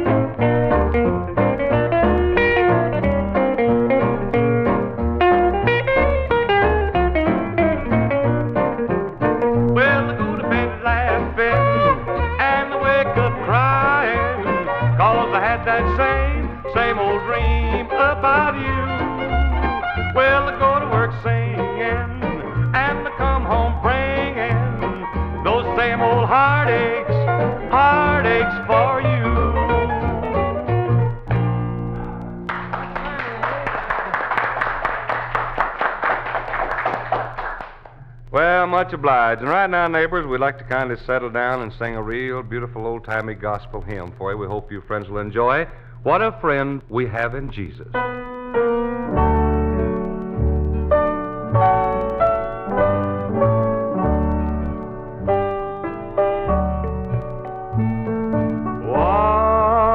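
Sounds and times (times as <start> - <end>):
country band music: 0.0 - 59.9
man talking: 38.3 - 48.0.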